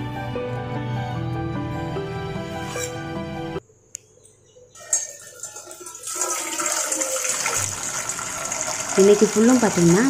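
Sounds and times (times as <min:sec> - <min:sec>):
water pouring into saucepan: 0:04.9 - 0:10.0.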